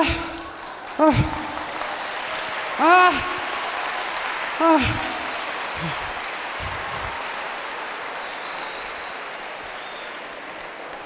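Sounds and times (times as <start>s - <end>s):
audience clapping: 0.0s - 11.0s.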